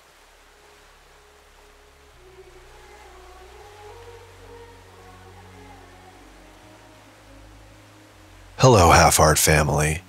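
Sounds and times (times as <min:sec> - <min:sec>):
soft sustained background music: 0:00.0 - 0:10.0.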